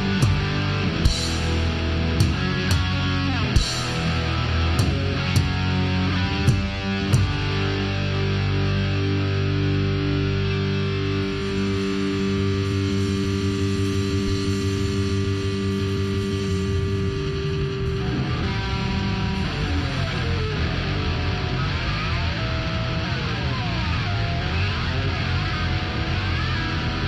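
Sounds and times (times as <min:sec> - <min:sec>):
drum hits: 0:00.0 - 0:07.7
falling guitar slides: 0:00.0 - 0:09.5
guitar chord ringing: 0:00.0 - 0:27.0
heavy metal band playing: 0:00.0 - 0:27.0.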